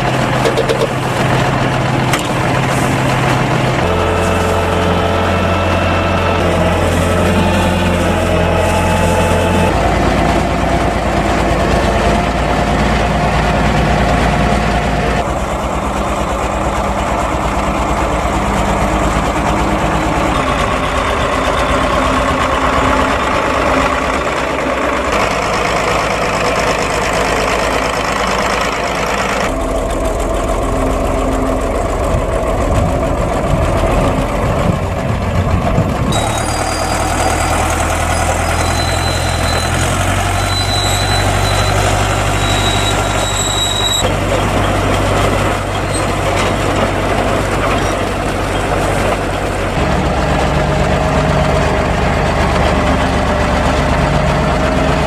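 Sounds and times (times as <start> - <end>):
diesel tractor engine under load: 0.0 - 55.0
high-pitched whines: 2.1 - 11.2.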